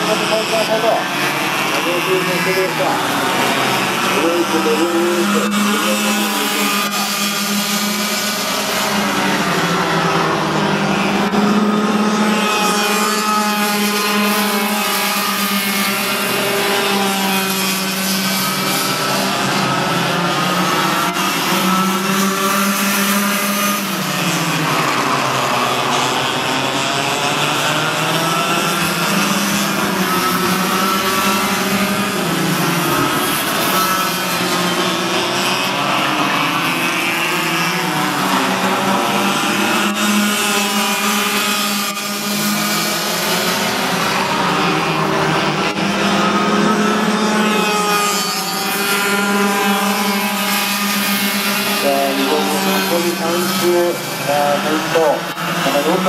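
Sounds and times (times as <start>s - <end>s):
kart engines racing: 0.0s - 56.0s.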